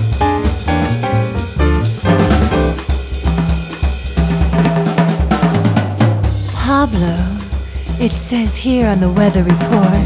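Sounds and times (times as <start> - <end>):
low held bass notes: 0.0 - 2.8
jazz drum kit: 0.0 - 10.0.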